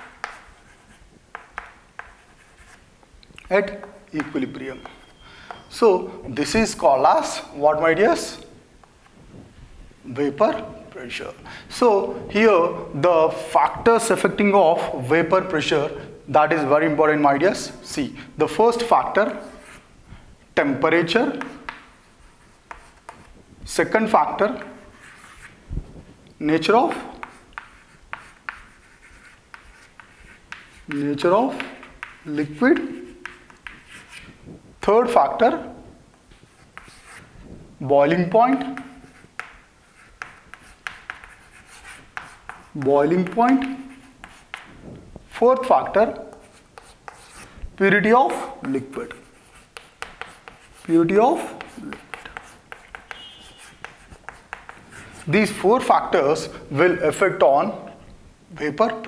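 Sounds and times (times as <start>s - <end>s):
chalk tapping on chalkboard: 0.0s - 2.8s, 3.7s - 5.7s, 21.3s - 23.3s, 26.9s - 34.4s, 36.3s - 37.3s, 38.6s - 44.8s, 45.6s - 47.5s, 48.3s - 55.9s
chalk scratching on board: 0.0s - 2.9s, 3.8s - 5.6s, 18.7s - 19.9s, 21.3s - 23.3s, 24.3s - 25.6s, 26.9s - 34.4s, 36.4s - 37.3s, 38.5s - 44.8s, 45.5s - 47.6s, 48.3s - 55.9s
man speaking: 3.4s - 4.9s, 5.7s - 8.5s, 10.0s - 19.6s, 23.7s - 24.9s, 26.4s - 27.2s, 30.9s - 33.1s, 34.8s - 35.9s, 37.8s - 39.0s, 42.7s - 44.0s, 45.3s - 46.4s, 47.8s - 49.3s, 50.8s - 52.2s, 55.2s - 59.0s.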